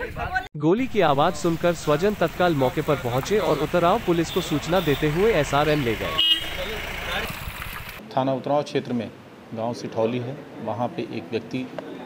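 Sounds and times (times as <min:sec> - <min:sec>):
traffic noise: 0:00.8 - 0:12.0.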